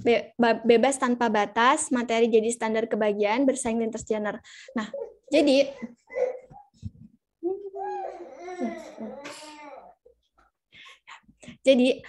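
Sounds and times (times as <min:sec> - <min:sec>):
woman speaking over video call: 0:00.0 - 0:06.0, 0:11.4 - 0:12.0.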